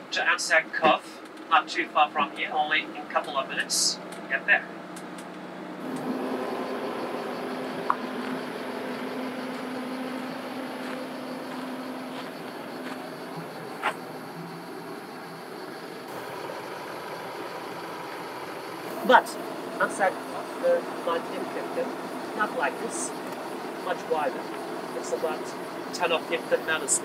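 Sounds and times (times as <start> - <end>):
minibus engine and road noise: 0.0 - 27.0
low hum: 5.0 - 27.0.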